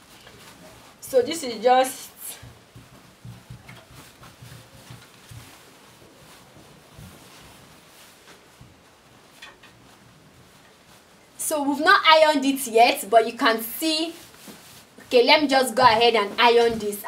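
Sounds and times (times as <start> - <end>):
fabric rustling: 0.0 - 17.0
soft bumps on a table: 2.4 - 7.6.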